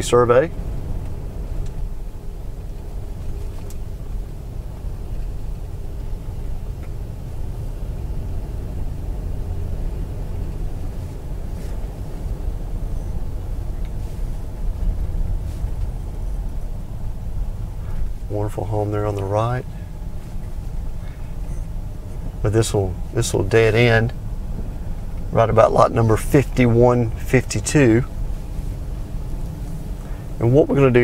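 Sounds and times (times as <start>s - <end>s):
car engine and road rumble: 0.0s - 31.0s.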